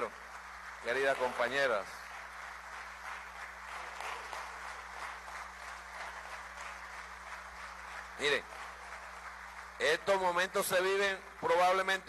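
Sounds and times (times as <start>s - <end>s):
crowd applauding: 0.0s - 12.0s.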